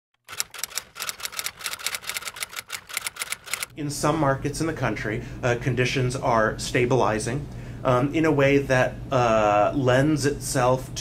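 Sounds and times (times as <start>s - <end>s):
typewriter key clacking: 0.2s - 3.7s.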